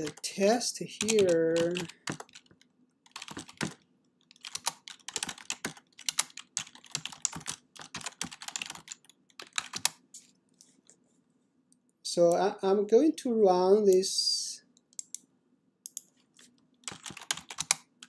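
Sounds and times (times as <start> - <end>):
typing on computer keyboard: 1.0 - 10.0, 16.8 - 17.9.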